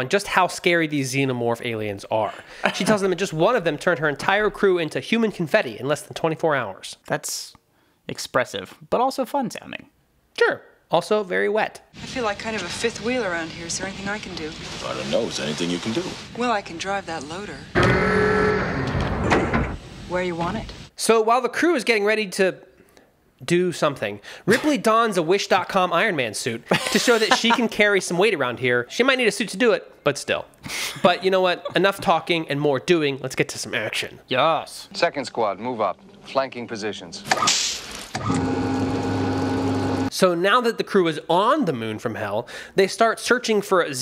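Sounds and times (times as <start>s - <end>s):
loud mechanical whine: 17.8s - 19.8s
electric motor hum: 38.2s - 40.1s.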